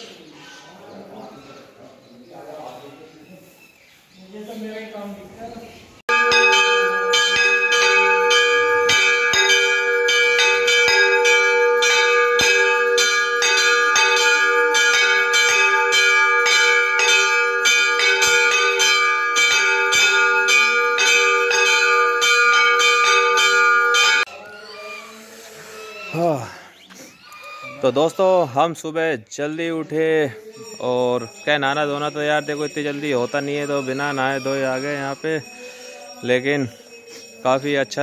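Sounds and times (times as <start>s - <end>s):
brass temple bell ringing: 6.1s - 24.3s, 30.4s - 38.0s.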